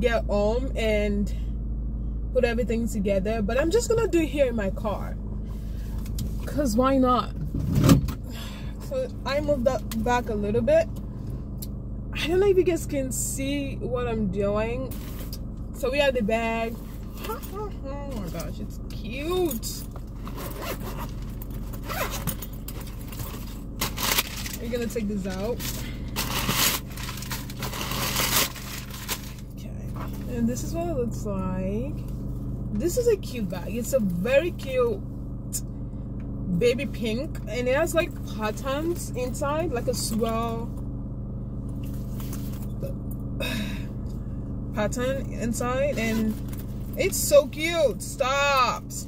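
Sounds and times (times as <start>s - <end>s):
car engine idling: 0.0s - 49.0s
zipper being pulled open: 20.2s - 22.4s
fabric bag rustling: 25.5s - 29.4s.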